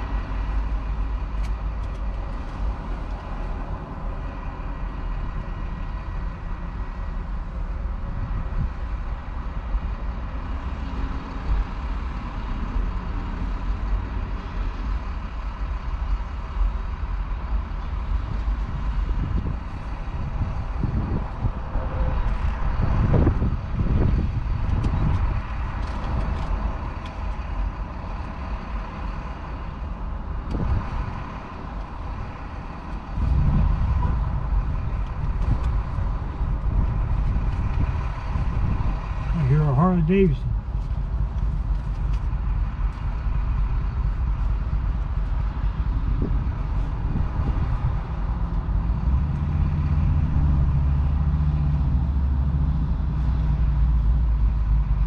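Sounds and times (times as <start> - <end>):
vehicle engine idling: 0.0 - 55.0.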